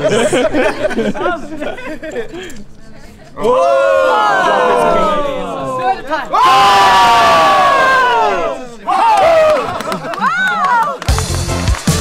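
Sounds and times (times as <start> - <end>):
crowd noise: 0.0 - 12.0
spectators yelling: 3.4 - 11.0.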